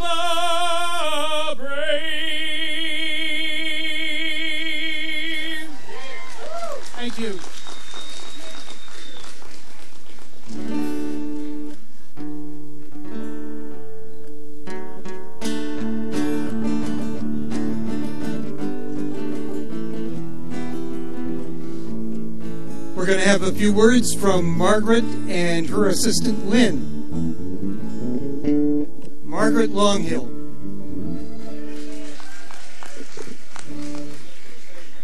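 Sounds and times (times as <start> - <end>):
crowd applause: 5.6 - 11.3, 31.0 - 35.0.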